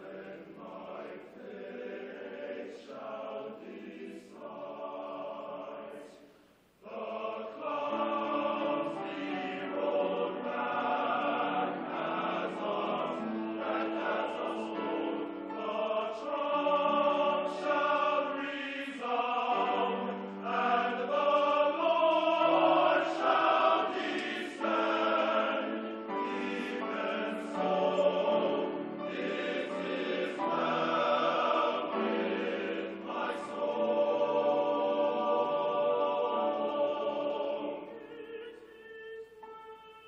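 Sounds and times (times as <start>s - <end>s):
men's choir singing: 0.0s - 40.0s.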